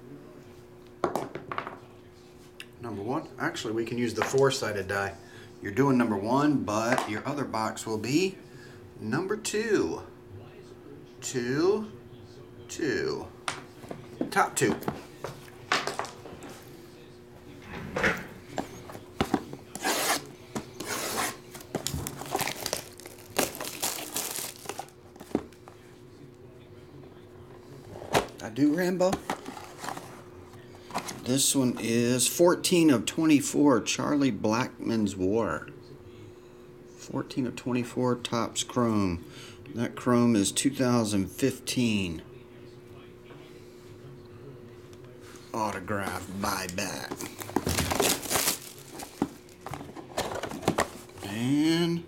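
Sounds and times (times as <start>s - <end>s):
shrink wrap crinkling and tearing: 19.8s - 25.3s, 46.8s - 51.1s.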